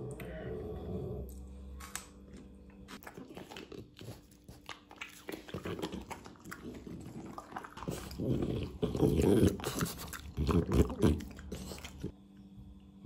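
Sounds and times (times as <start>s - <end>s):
dog eating: 2.8s - 12.2s.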